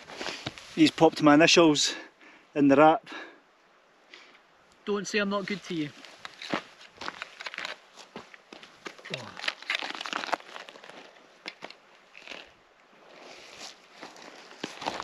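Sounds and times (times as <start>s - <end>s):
crinkling rustling handling: 5.4s - 12.5s, 13.1s - 15.0s
footsteps on gravel: 5.8s - 12.5s, 13.9s - 15.0s.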